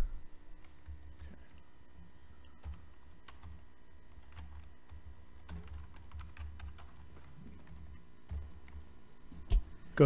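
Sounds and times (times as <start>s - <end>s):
computer keyboard typing: 2.6s - 8.9s.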